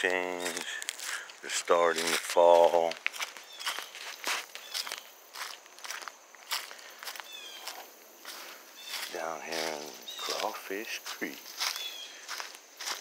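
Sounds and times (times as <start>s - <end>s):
footsteps on gravel and leaves: 0.0s - 13.0s.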